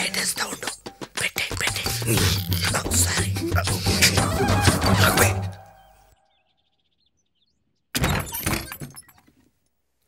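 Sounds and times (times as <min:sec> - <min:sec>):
birds chirping: 0:02.7 - 0:08.0.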